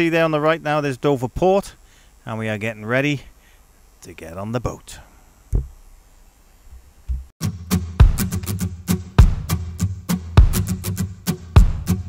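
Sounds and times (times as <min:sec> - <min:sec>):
deep thump: 0:05.5 - 0:05.8, 0:07.1 - 0:07.3.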